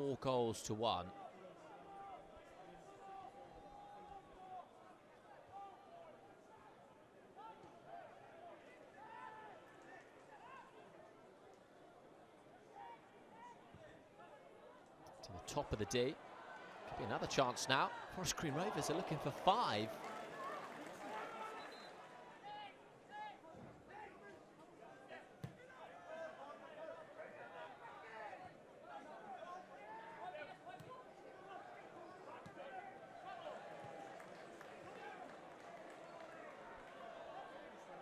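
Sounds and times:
stadium background hum: 0:15.0 - 0:24.8
crowd and players shouting: 0:15.2 - 0:38.0.

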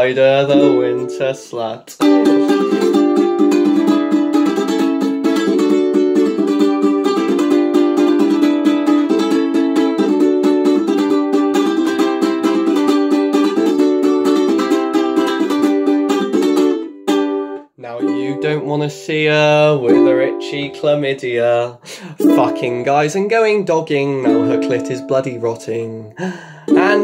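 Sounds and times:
ukulele strummed: 0:00.0 - 0:26.1, 0:26.7 - 0:27.0.

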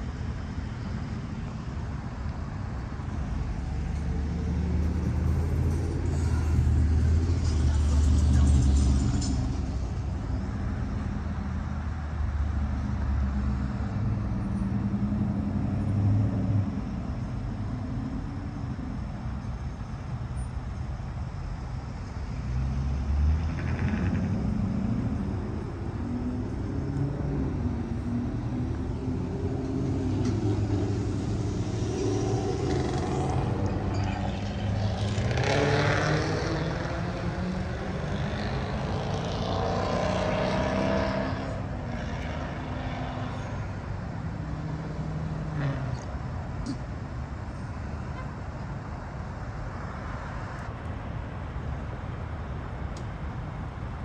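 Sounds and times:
vehicle engines running: 0:00.0 - 0:54.0.

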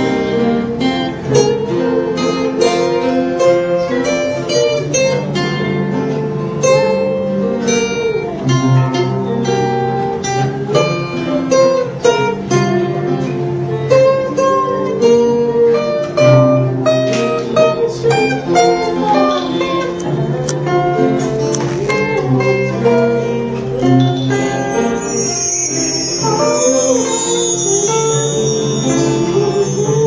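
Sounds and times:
acoustic guitars playing together: 0:00.0 - 0:30.0.

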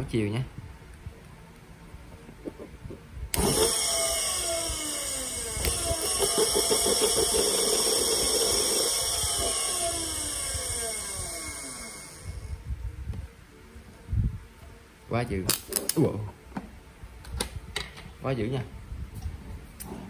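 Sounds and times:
electric motor whining: 0:03.4 - 0:12.6.

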